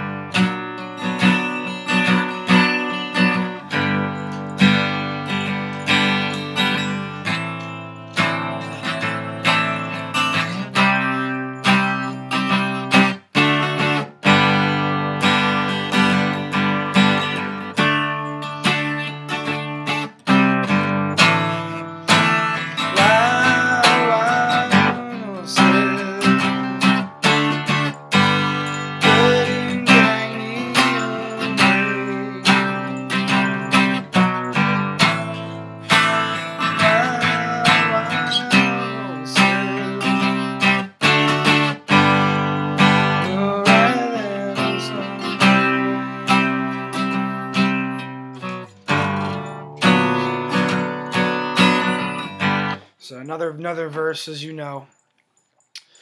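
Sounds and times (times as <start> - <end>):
acoustic guitar strumming: 0.0 - 54.8.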